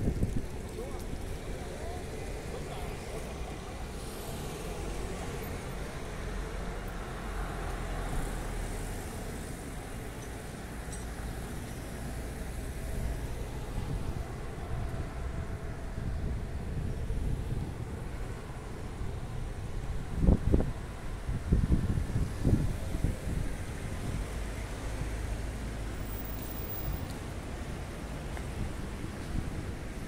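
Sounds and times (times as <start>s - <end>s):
wind buffeting microphone: 0.0s - 2.5s, 12.8s - 25.4s
road traffic rumble: 0.0s - 30.0s.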